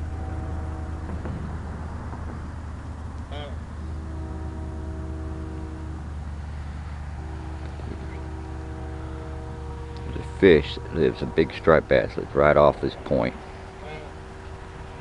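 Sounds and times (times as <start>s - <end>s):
faint humming tones: 0.0s - 15.0s
low rumble of road traffic: 0.0s - 15.0s.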